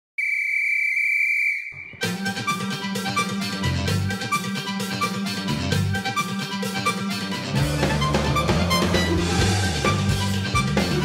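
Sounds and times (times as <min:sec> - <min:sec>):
whistle blast: 0:00.2 - 0:03.3
music: 0:01.9 - 0:11.0.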